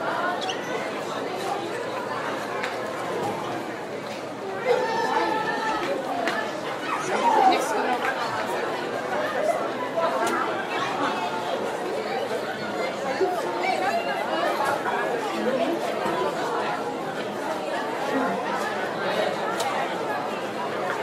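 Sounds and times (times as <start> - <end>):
many voices chattering: 0.0 - 21.0.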